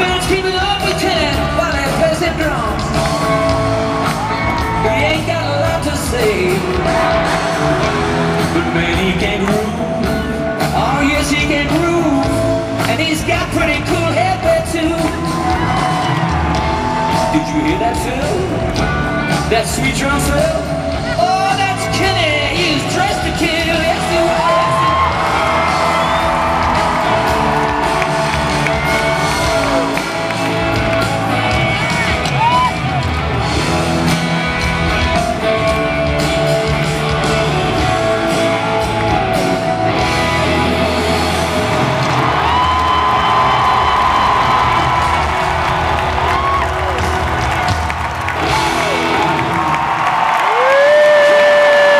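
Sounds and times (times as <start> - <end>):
bass: 0.0 - 51.9
drum kit: 0.0 - 51.9
audience whooping: 2.5 - 5.6, 15.0 - 18.6, 22.6 - 33.6, 38.2 - 51.9.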